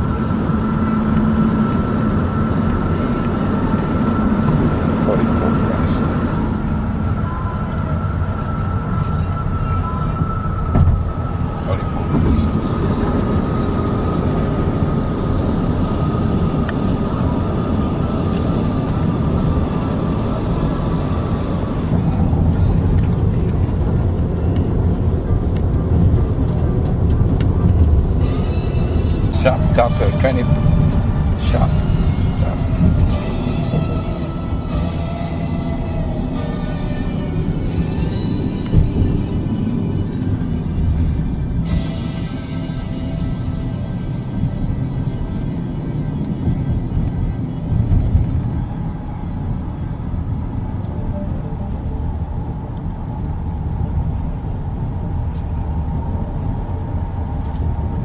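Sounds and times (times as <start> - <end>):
thin high whine: 0.0 - 24.6
car road and engine noise: 0.0 - 58.0.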